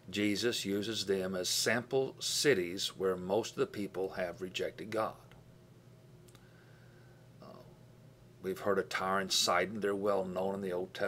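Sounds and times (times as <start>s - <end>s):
man speaking: 0.1s - 5.4s, 8.4s - 11.0s
faint clicks: 6.2s - 6.5s.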